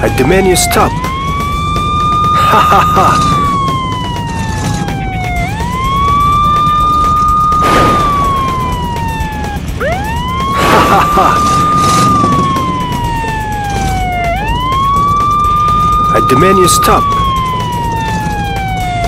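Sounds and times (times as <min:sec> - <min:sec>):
police siren wailing: 0:00.0 - 0:19.0.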